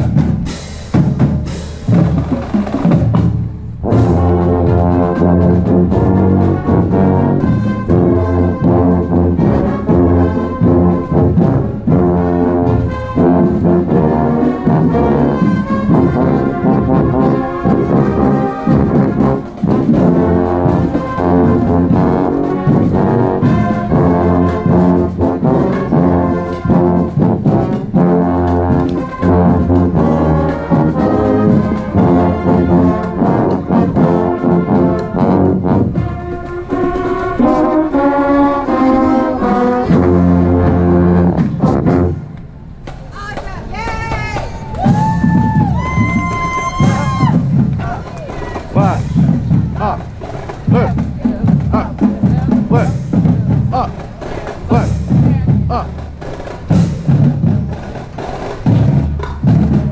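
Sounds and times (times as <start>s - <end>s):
brass band playing tune: 0.0s - 59.9s
marching drums: 0.0s - 59.9s.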